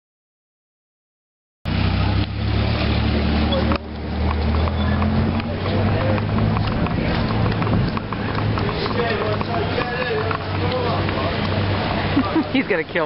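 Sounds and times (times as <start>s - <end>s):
street noise: 1.7s - 13.0s
vehicle engine running: 1.7s - 13.0s
indistinct voices: 2.5s - 13.0s.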